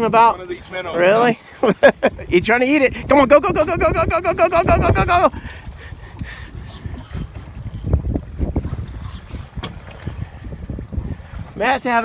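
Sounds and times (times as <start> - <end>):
water slapping against hull: 0.0 - 12.0
wind buffeting microphone: 0.0 - 12.0.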